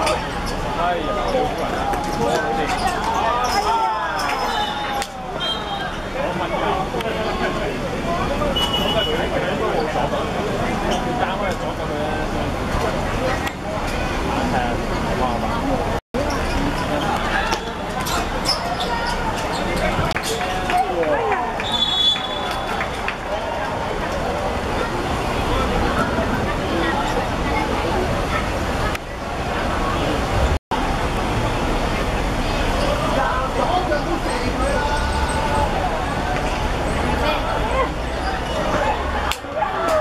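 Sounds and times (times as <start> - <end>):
people shouting and calling out: 0.0 - 12.4, 32.8 - 40.0.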